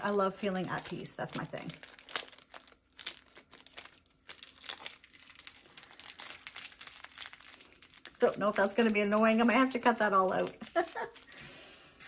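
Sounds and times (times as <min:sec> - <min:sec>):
wrapping crinkling: 0:00.0 - 0:11.8.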